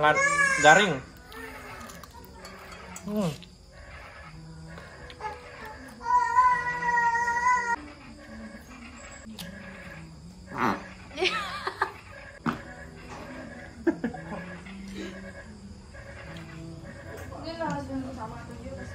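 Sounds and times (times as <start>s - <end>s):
faint background music: 0.0s - 18.9s.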